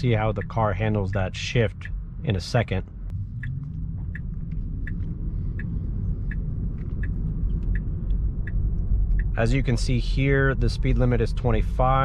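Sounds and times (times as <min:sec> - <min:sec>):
road and tyre rumble: 0:00.0 - 0:12.0
turn signal ticking: 0:00.0 - 0:12.0.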